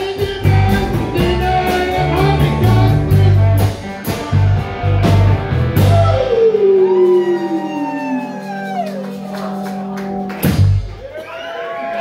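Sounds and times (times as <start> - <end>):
rock band sustained chord: 0.7 - 6.2
note sliding downward: 5.8 - 10.1.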